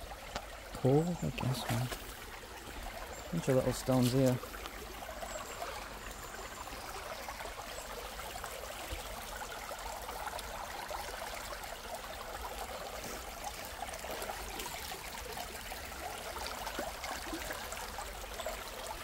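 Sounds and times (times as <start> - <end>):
stream trickling over stones: 0.0 - 19.0.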